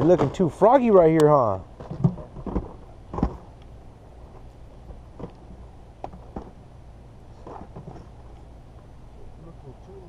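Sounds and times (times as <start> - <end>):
steady low hum: 0.0 - 10.0
faint rustle: 1.7 - 10.0.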